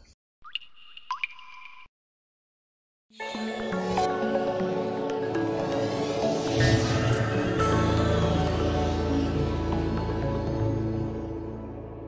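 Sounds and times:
rising water-drop bloops: 0:00.4 - 0:01.9.

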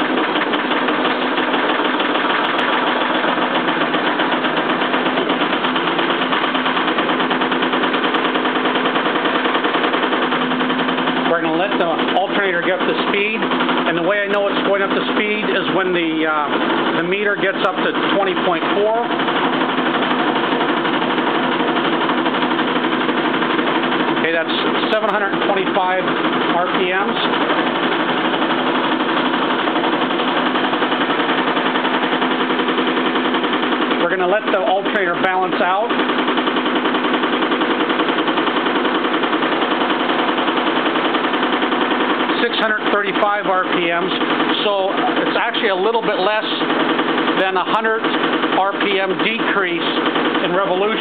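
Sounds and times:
alternator whirring and chattering: 0:00.0 - 0:51.0.

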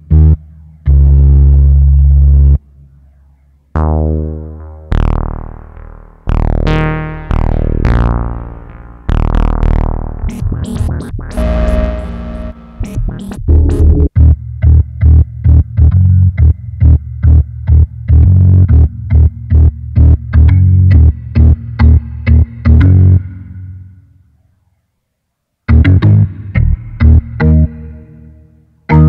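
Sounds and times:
synthesizer pulsing bass notes: 0:00.0 - 0:24.0, 0:25.7 - 0:29.0.

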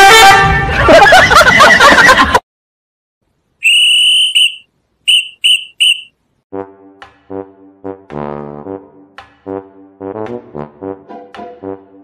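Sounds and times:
whistle blasts: 0:03.6 - 0:06.2.

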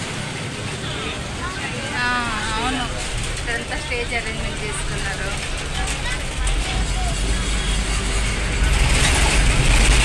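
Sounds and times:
bus engine rumbling: 0:00.0 - 0:10.0
road noise: 0:00.0 - 0:10.0.

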